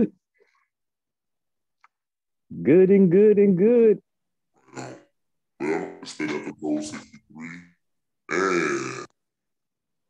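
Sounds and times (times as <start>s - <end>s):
man making wordless vocal sounds: 4.9s - 8.8s.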